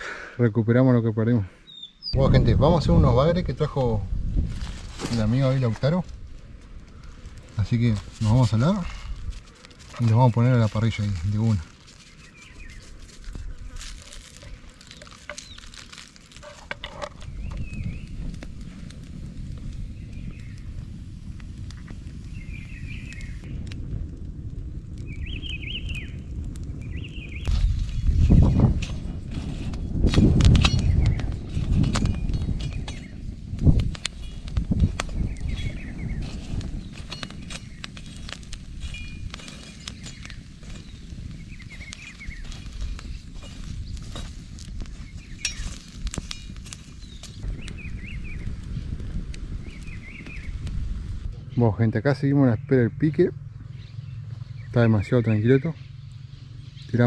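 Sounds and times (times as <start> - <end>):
birds chirping: 1.5 - 2.8, 6.8 - 18.4, 19.7 - 20.9, 21.9 - 23.7, 25.0 - 28.8, 30.2 - 57.0
wind gusting on microphone: 2.0 - 57.0
wood fire crackling and popping: 2.1 - 57.0.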